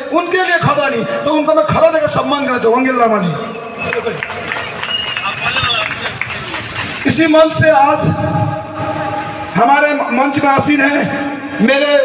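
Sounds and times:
crowd murmur: 0:03.6 - 0:07.1.

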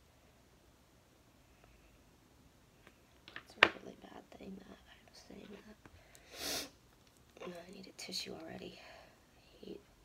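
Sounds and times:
loud sniff: 0:06.2 - 0:06.8.

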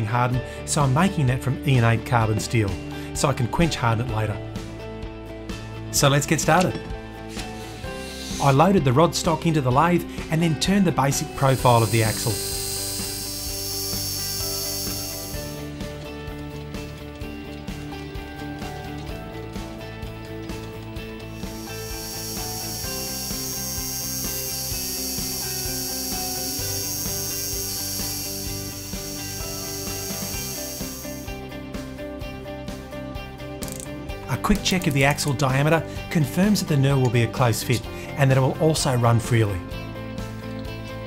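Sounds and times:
high cutting hiss: 0:07.2 - 0:09.2, 0:11.1 - 0:15.8, 0:21.2 - 0:31.4
lathe motor running: 0:07.3 - 0:08.8, 0:11.4 - 0:31.4.

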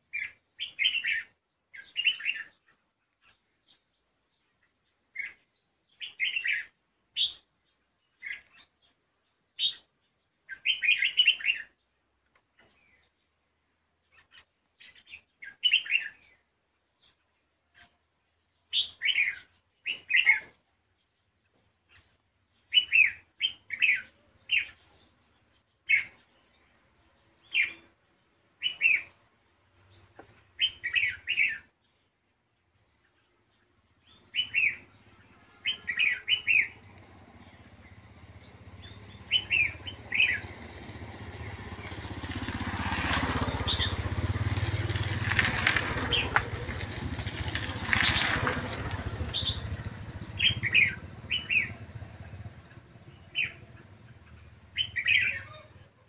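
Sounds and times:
bird chirping: 0:00.0 - 0:56.0
engine: 0:34.0 - 0:56.0.

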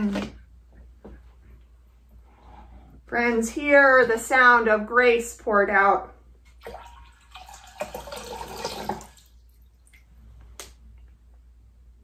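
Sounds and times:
water drips: 0:06.5 - 0:10.1
water pouring into glass bowl: 0:06.6 - 0:10.0.

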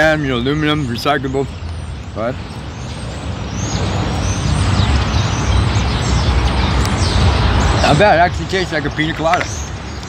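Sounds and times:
heavy road vehicle rumble: 0:00.0 - 0:10.0.

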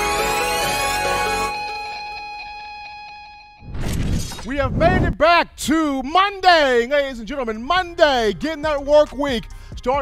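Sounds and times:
man calling out: 0:04.5 - 0:10.0.

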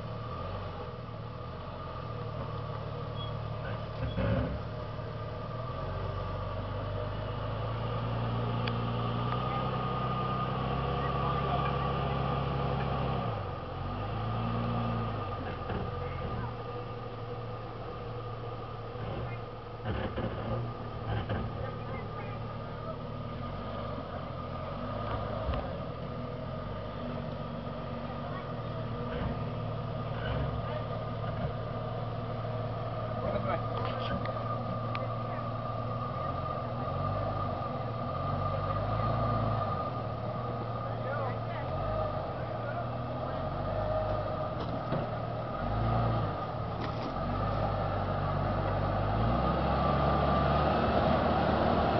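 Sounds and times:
suv engine running at low revs: 0:00.0 - 0:51.9
knocks from rocks and drivetrain: 0:19.1 - 0:21.9.

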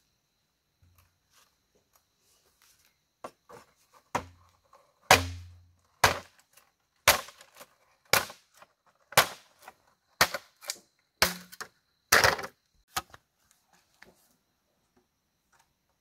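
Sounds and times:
machete chopping bamboo: 0:05.1 - 0:06.3, 0:07.0 - 0:07.5, 0:08.1 - 0:09.5, 0:10.2 - 0:11.7.

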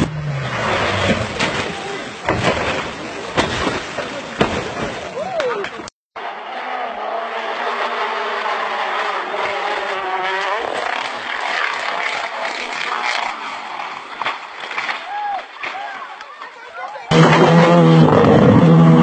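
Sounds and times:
car crash impacts: 0:00.0 - 0:05.1
voices: 0:01.2 - 0:05.9, 0:14.9 - 0:17.2
car engine at high revs: 0:06.2 - 0:13.5, 0:17.1 - 0:19.0
tyres sliding on gravel: 0:07.3 - 0:17.5.

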